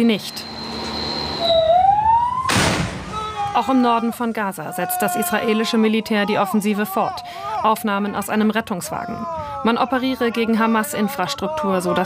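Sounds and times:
ambulance siren rising in pitch: 0.2 - 6.0
explosion blast: 2.4 - 3.4.

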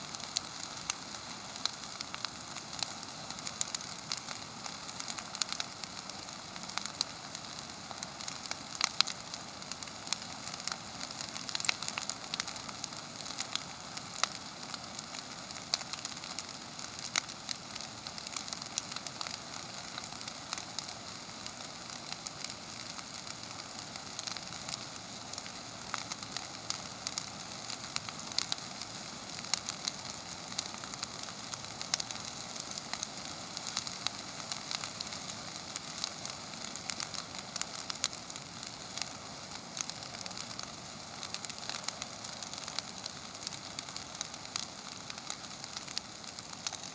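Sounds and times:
brush pile burning: 0.0 - 46.9
fire crackling and popping: 0.0 - 46.9.

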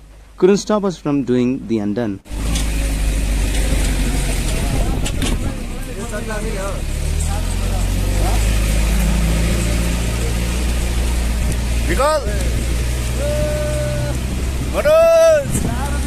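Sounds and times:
wind and road noise: 0.0 - 16.0
vehicle engine under load: 2.2 - 16.0.

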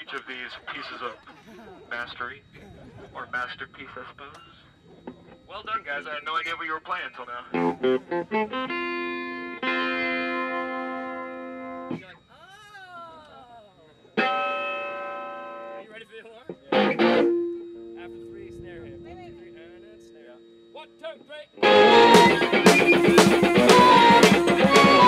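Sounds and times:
laughter: 0.8 - 2.0, 2.6 - 3.3
electric guitar chords ringing: 7.5 - 12.0, 14.2 - 15.8, 16.5 - 20.9, 21.6 - 25.0.

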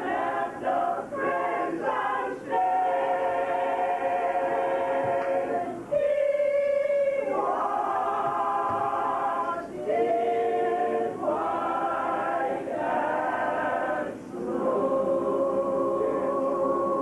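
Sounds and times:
gospel choir singing a cappella: 0.0 - 17.0.

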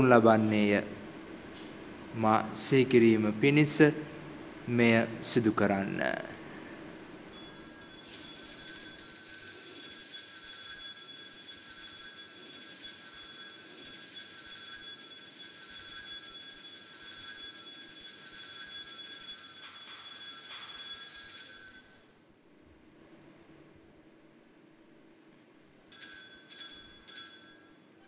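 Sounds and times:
altar bells jingling: 7.3 - 22.2.

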